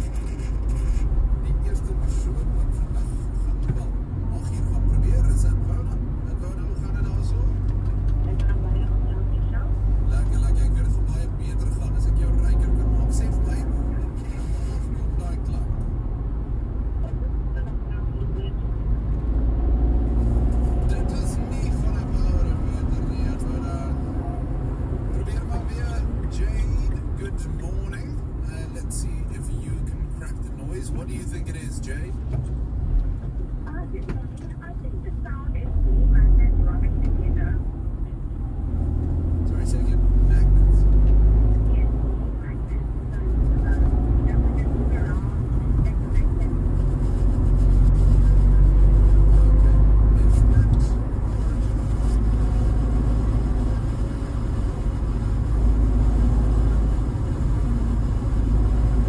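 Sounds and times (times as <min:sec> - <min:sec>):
voice from car radio: 0:00.0 - 0:16.0, 0:16.9 - 0:18.8, 0:20.5 - 0:32.4, 0:33.4 - 0:38.5, 0:39.2 - 0:59.0
car engine and tyre rumble: 0:00.0 - 0:59.0.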